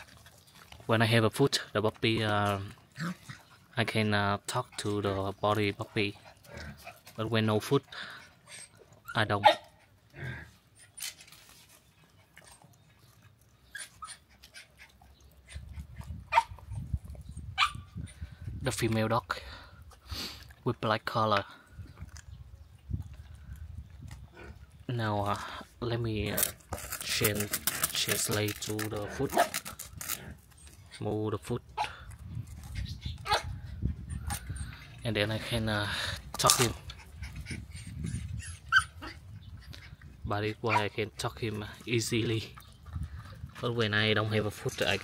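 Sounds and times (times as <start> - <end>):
dog yelping: 16.3 - 16.6, 17.6 - 17.9, 32.9 - 34.6, 37.0 - 39.3
dog crying: 37.0 - 39.3.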